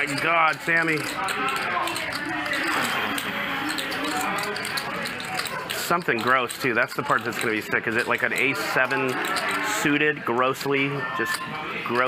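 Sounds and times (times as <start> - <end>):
poker chips clicking: 0.0 - 9.8
quiet indistinct talk: 0.0 - 12.0.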